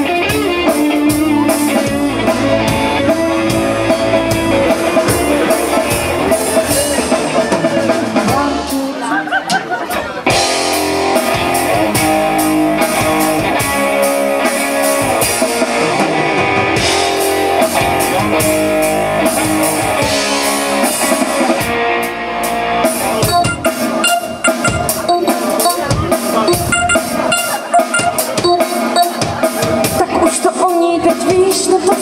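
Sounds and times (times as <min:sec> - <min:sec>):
bass guitar: 0:00.0 - 0:08.7, 0:10.3 - 0:32.0
electric guitar: 0:00.0 - 0:08.8
keyboard: 0:22.6 - 0:30.9
drum kit: 0:23.2 - 0:30.0.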